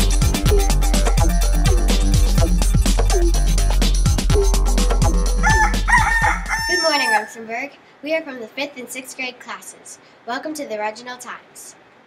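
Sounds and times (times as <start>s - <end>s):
intro music with drum beat: 0.0s - 6.8s
rooster crowing: 5.4s - 7.4s.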